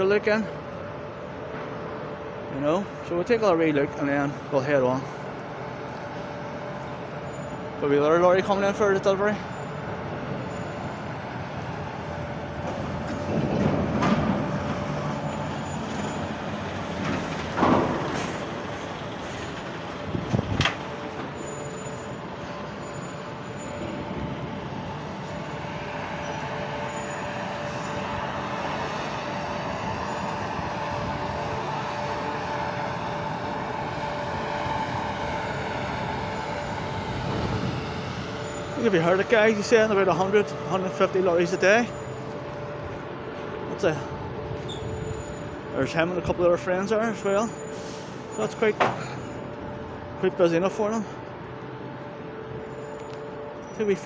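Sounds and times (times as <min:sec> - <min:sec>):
diesel lorry driving past: 0:00.0 - 0:54.0.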